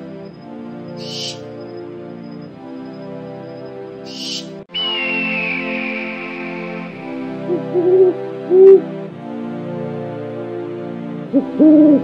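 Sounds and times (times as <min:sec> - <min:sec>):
synthesizer lead melody: 0:04.7 - 0:10.4
sustained synthesizer chords: 0:04.7 - 0:11.4.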